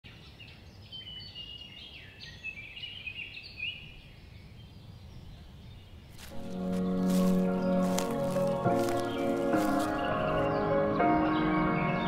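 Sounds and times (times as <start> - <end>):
songbirds singing: 0.1 - 12.0.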